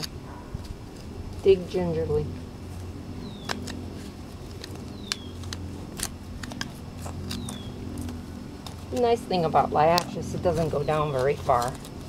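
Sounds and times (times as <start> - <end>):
hand trowel scraping soil: 0.0 - 12.0
steady low hum: 0.0 - 12.0.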